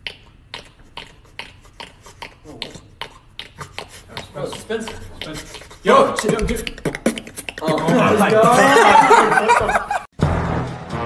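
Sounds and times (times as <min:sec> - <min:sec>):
hollow mouth pops: 0:00.0 - 0:07.9.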